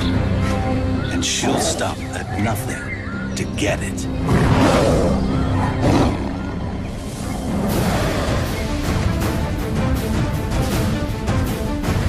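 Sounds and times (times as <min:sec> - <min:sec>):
low music drone: 0:00.0 - 0:12.0
tigers snarling: 0:04.2 - 0:08.8.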